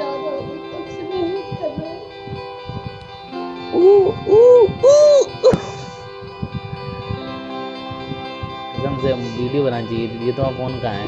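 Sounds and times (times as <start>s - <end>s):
background music: 0.0s - 11.0s
loud wailing crying: 3.8s - 5.8s.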